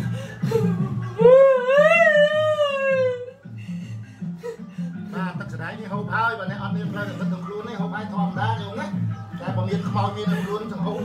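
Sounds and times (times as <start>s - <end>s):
woman wailing: 0.5s - 3.4s.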